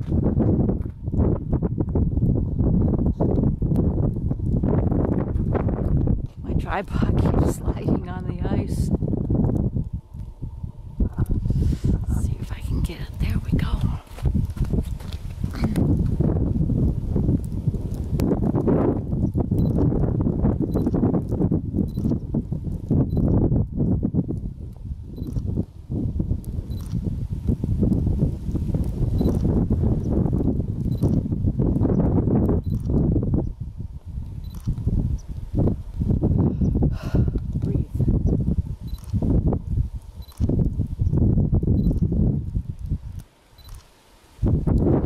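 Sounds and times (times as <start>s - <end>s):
wind buffeting microphone: 0.0s - 45.0s.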